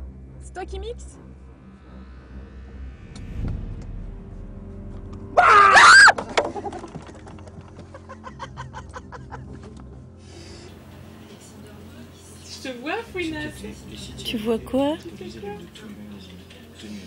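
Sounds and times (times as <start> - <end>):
high-pitched shriek: 1.6 - 6.4.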